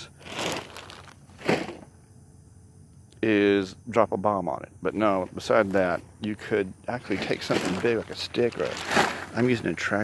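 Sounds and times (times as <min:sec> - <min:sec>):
footsteps rustling in long grass: 0:07.0 - 0:09.5.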